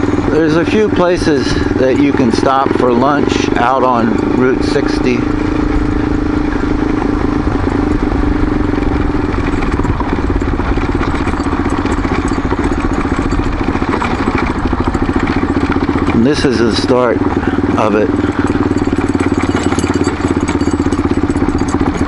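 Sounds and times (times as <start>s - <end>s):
off-road vehicle engine running: 0.0s - 22.0s
rumbling gravel road noise: 0.0s - 22.0s.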